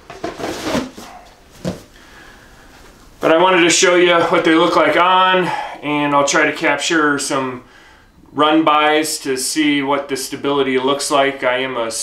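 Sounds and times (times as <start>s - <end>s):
cardboard rustling and scraping: 0.0s - 1.9s.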